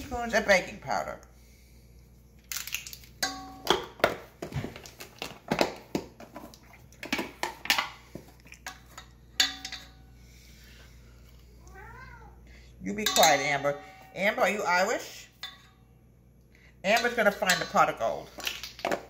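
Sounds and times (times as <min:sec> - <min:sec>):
cat meowing: 0:11.6 - 0:12.4.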